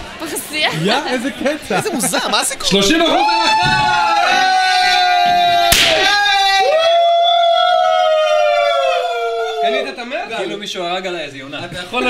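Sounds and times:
party popper crack: 5.6 - 6.2.

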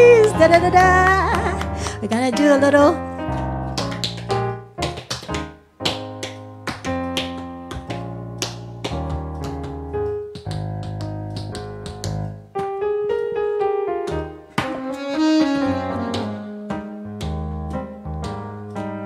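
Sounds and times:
digital piano playing chords: 0.0 - 19.0.

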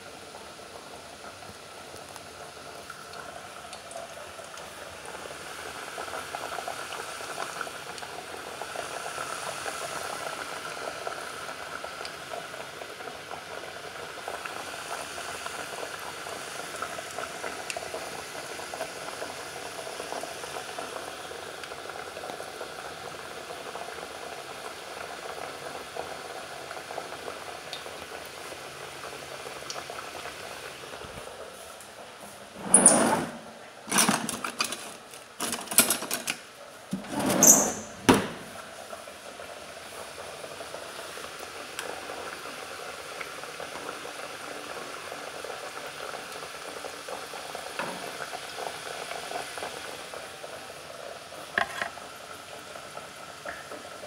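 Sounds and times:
vegetables sizzling in hot oil: 0.0 - 32.0, 38.5 - 54.0
pot of rice bubbling: 0.0 - 32.6, 36.3 - 54.0.

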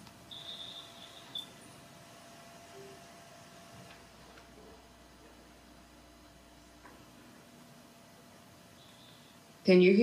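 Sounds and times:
low room hum: 0.0 - 10.0
high-pitched electronic beep: 0.3 - 1.6.

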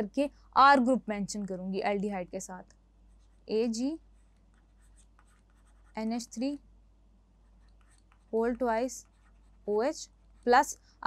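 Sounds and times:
person speaking: 0.0 - 6.6, 7.8 - 10.8
stylus scratching and tapping: 2.1 - 6.6, 7.4 - 10.8.

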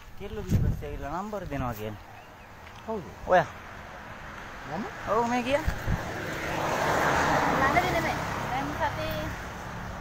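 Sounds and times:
men's voices: 0.0 - 6.5
motor vehicle passing: 2.1 - 10.0.

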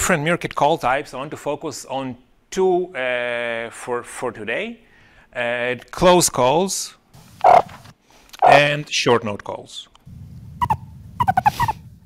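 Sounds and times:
meerkat calls: 7.4 - 7.7, 10.6 - 11.9
low background rumble: 10.1 - 12.0.

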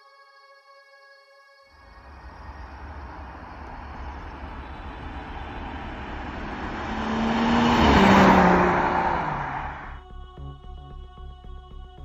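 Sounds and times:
car driving past at speed: 1.9 - 10.0.

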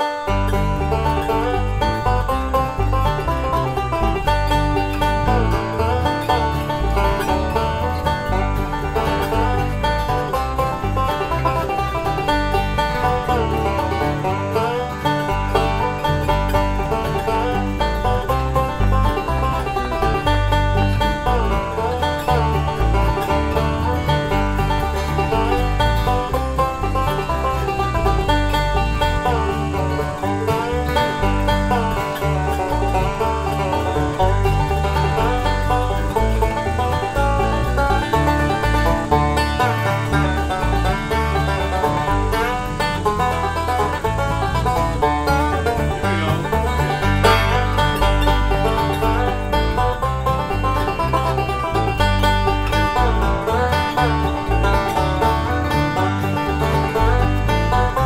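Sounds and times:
acoustic guitar accompaniment: 0.0 - 58.0
banjo picking: 0.0 - 58.0.

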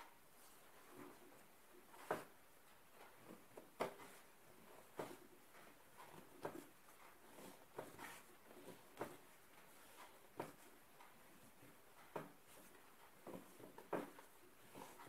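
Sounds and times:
dough kneading thuds: 0.4 - 15.0
dough squishing: 3.2 - 15.0.

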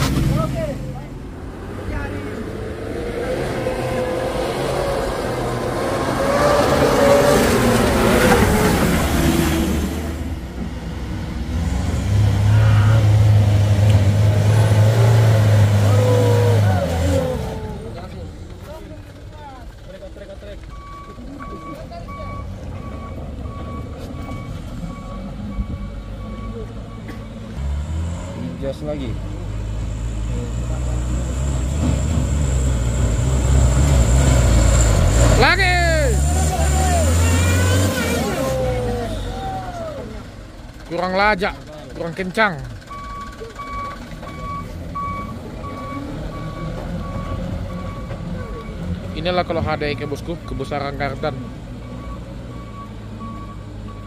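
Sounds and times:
truck engines revving: 0.0 - 54.0
reversing beeper: 20.7 - 27.5, 42.9 - 54.0.

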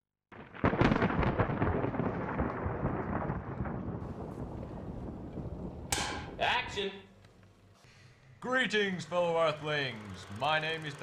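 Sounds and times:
crackling thunder-like rumble: 0.3 - 7.2.

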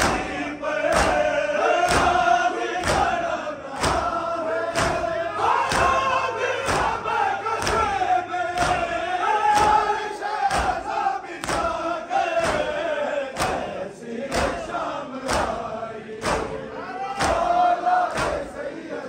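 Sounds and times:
crowd of men chanting: 0.0 - 19.0.

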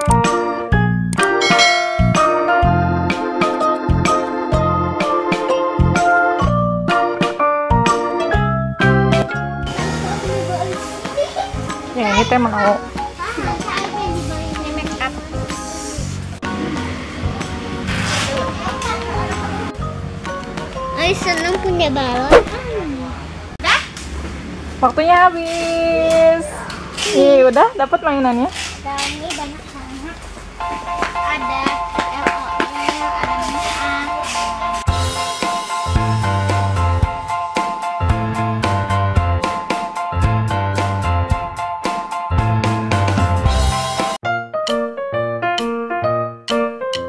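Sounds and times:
background music: 0.0 - 22.3, 30.6 - 47.0.

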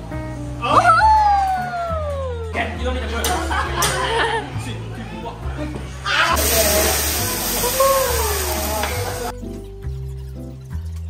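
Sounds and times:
background music with steady beat: 0.0 - 11.0
diners' voices: 1.6 - 9.3
sizzling hiss from hot plate: 6.4 - 9.3.

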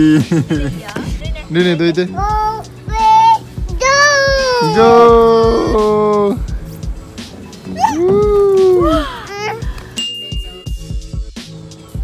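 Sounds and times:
young child calling out: 2.2 - 6.0, 7.8 - 9.7.

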